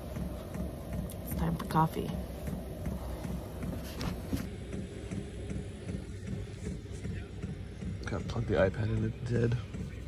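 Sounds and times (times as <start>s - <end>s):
heater rumbling with soft pulse: 0.0s - 10.0s.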